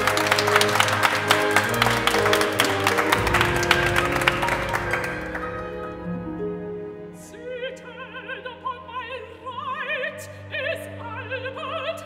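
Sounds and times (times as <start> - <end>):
chamber orchestra playing: 0.0 - 12.0.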